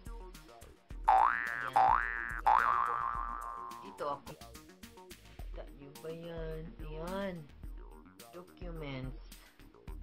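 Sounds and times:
quiet background music: 0:00.0 - 0:10.0
cartoon boing sound effect: 0:01.1 - 0:04.0.

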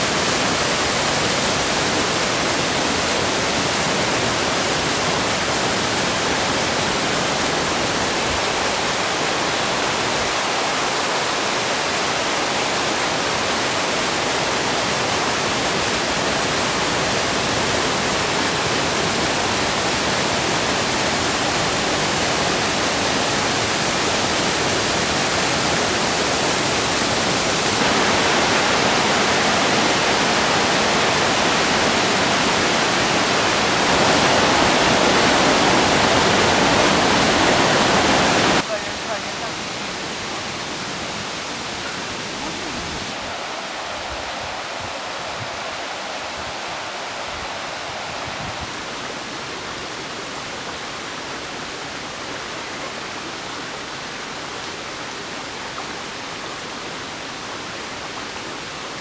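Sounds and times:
water rushing over rocks: 0:00.0 - 0:59.0.

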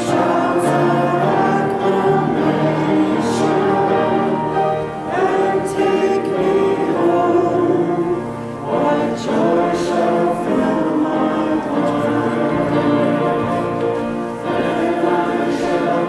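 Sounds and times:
congregation singing a hymn: 0:00.0 - 0:16.0.

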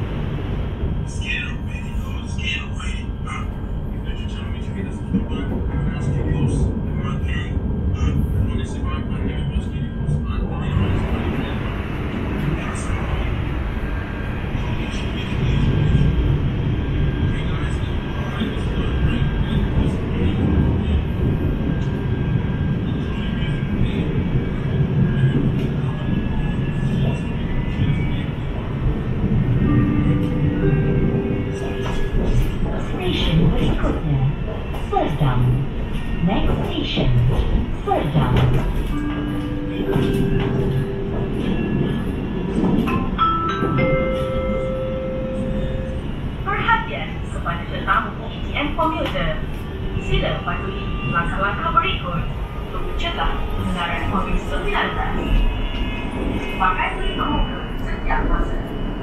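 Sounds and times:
train wheels rumbling on rails: 0:00.0 - 0:59.0.

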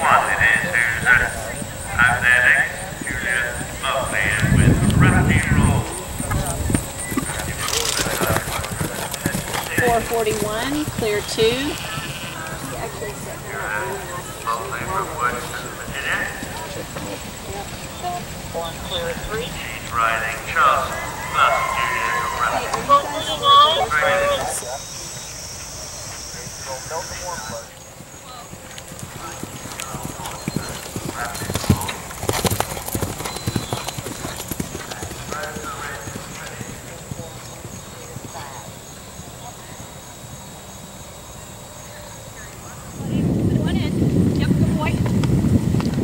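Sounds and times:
horse hoofbeats on grass: 0:00.0 - 0:20.3, 0:25.1 - 0:39.4
indistinct voices talking: 0:00.0 - 0:45.2.

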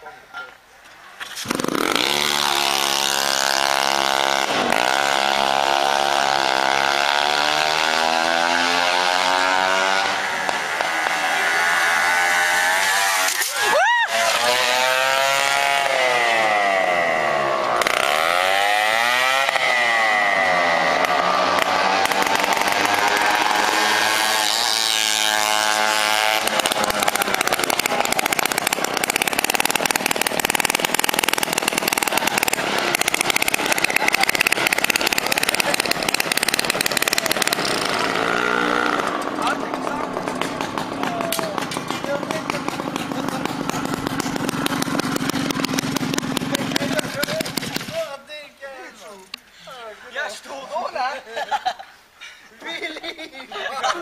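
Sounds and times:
rough noise: 0:01.2 - 0:49.4
moped engine revving past: 0:01.3 - 0:48.0.

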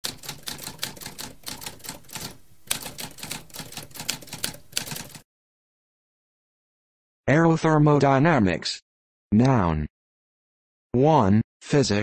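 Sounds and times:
typewriter keystrokes: 0:00.0 - 0:05.2.

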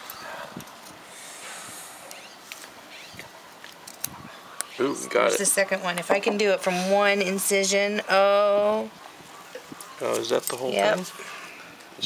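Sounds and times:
faint hiss: 0:00.0 - 0:02.7.

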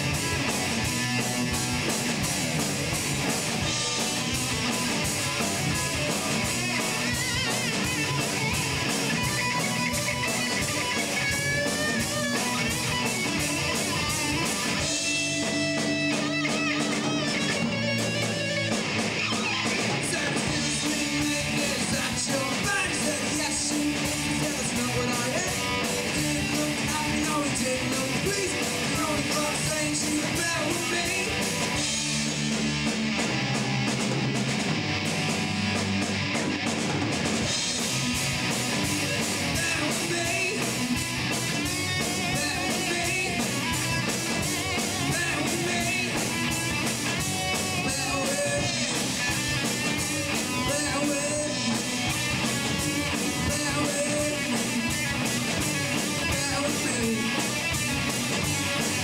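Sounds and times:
bass guitar: 0:00.0 - 0:59.0
drum kit beat: 0:00.0 - 0:59.0
electric guitars: 0:00.0 - 0:59.0.

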